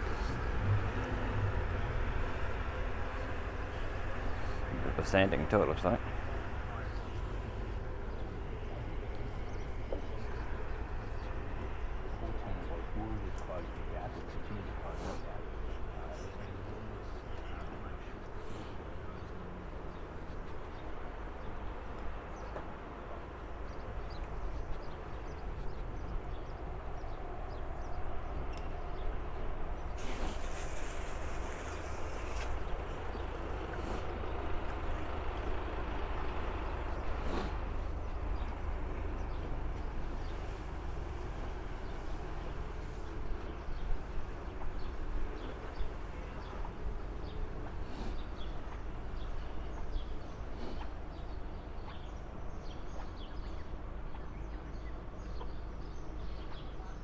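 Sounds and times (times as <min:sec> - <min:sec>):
constant low rumble: 0:00.0 - 0:57.0
burst of hiss: 0:30.0 - 0:32.6.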